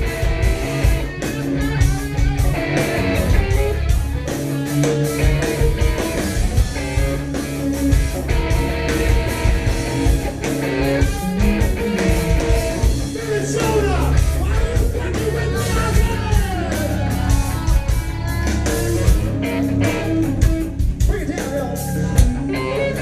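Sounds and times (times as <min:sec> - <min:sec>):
bass guitar: 0:00.0 - 0:23.0
electric guitar: 0:00.0 - 0:23.0
steady drum beat: 0:00.0 - 0:23.0.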